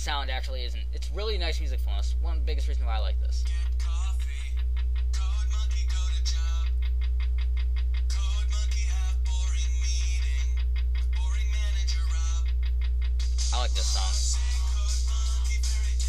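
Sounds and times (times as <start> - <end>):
steady low hum: 0.0 - 16.0
song from phone loudspeaker: 3.2 - 6.8, 8.1 - 12.6, 13.3 - 16.0.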